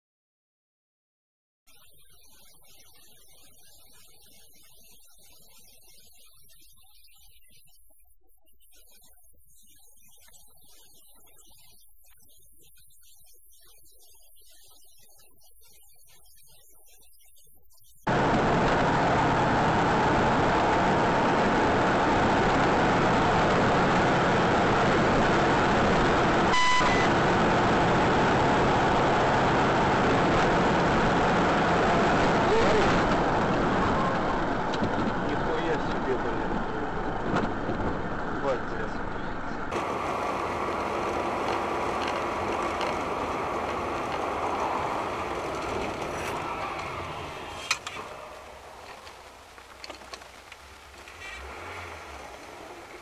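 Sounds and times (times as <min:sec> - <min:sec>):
vehicles driving: 0:18.1 - 0:53.0
short high beep: 0:26.5 - 0:27.1.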